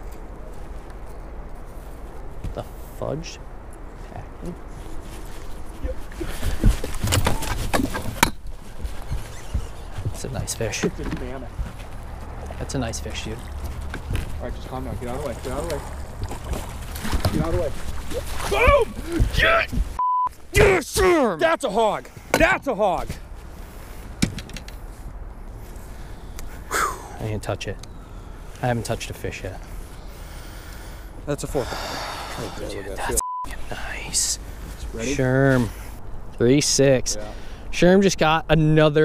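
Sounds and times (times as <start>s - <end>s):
footsteps on boat deck: 6.3s - 12.6s
fishing gear knocking and clattering: 24.2s - 24.8s.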